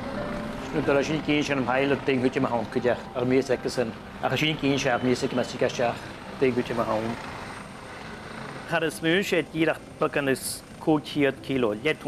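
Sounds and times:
helicopter hovering: 0.0s - 12.0s.

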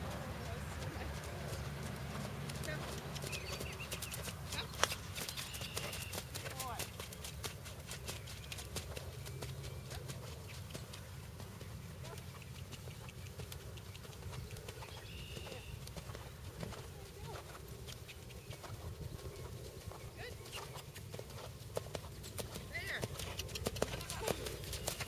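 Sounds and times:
horse hoofbeats on sand: 0.0s - 25.0s.

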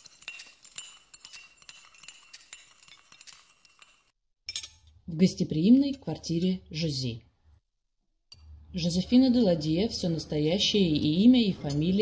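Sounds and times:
china cups and cutlery clinking: 0.0s - 4.9s.

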